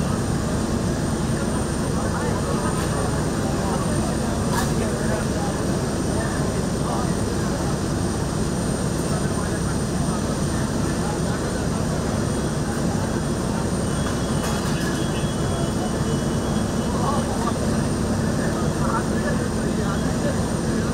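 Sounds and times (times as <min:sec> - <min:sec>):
diesel engine droning: 0:00.0 - 0:20.9
people talking faintly: 0:00.0 - 0:20.9.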